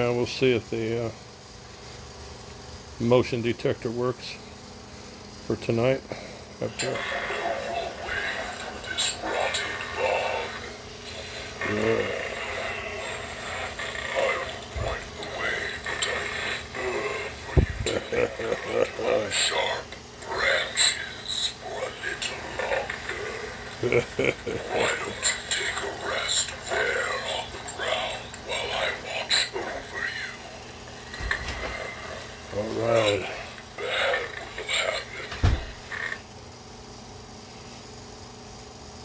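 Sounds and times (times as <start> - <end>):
faint electrical hum: 0.0 - 39.0
breathy hissing creature sounds: 2.8 - 36.3
recorded monster voice laughing: 6.6 - 19.6, 20.2 - 30.5.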